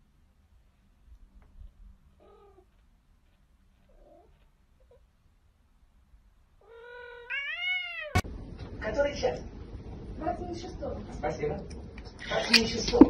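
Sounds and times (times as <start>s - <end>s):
cat meowing: 2.2s - 2.7s, 6.6s - 8.2s.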